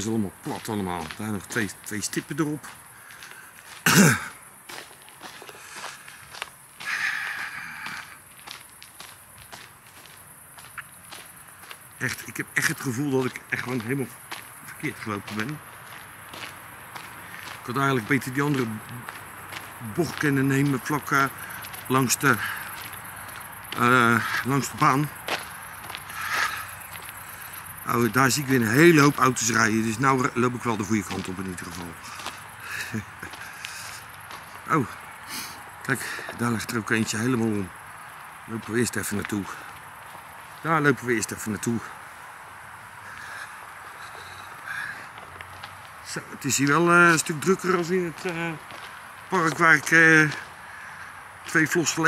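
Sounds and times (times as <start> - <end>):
footsteps on a path: 0.0 - 52.0
person coughing: 3.8 - 4.4.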